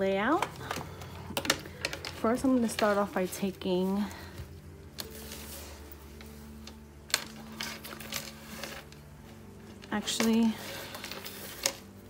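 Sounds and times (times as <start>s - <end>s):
quiet background music: 0.0s - 12.0s
items handled on a desk: 0.2s - 12.0s.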